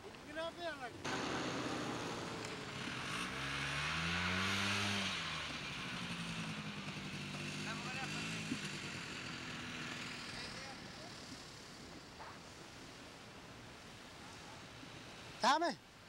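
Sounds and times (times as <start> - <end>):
snowmobile passing: 0.2 - 15.6.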